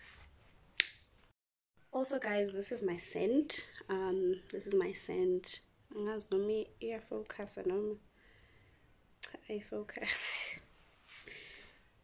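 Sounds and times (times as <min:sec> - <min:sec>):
finger snap: 0:00.8 - 0:01.1.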